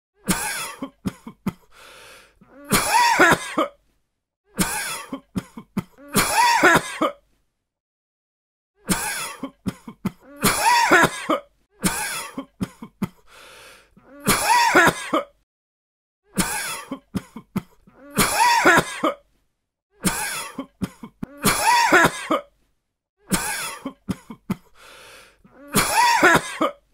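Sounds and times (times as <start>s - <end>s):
man coughing: 0.3s - 1.7s, 2.7s - 3.8s, 4.6s - 7.2s, 8.9s - 13.2s, 14.2s - 15.3s, 16.4s - 19.2s, 20.0s - 22.5s, 23.3s - 24.7s, 25.6s - 26.8s
drawn breath: 1.6s - 2.5s, 13.2s - 14.0s, 24.7s - 25.6s.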